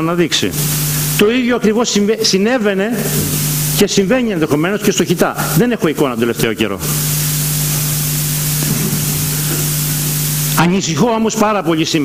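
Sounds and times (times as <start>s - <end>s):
electronic hiss: 0.1s - 12.0s
constant low hum: 2.9s - 10.6s.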